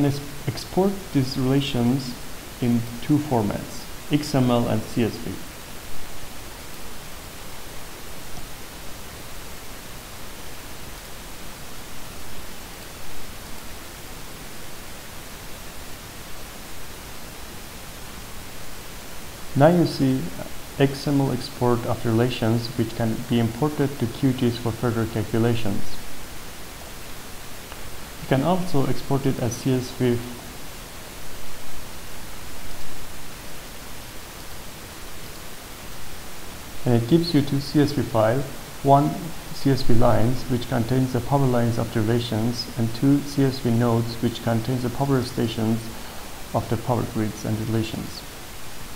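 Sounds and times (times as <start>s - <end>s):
microphone hiss: 0.0s - 48.9s.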